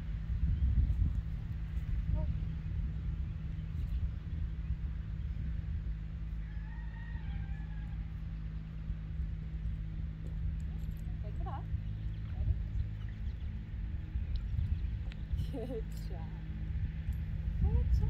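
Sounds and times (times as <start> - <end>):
low rumble of wind: 0.0 - 18.0
rooster crowing: 6.3 - 8.4.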